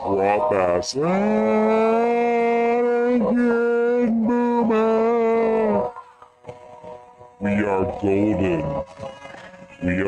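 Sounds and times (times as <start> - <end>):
voice chanting a long note: 0.4 - 6.0.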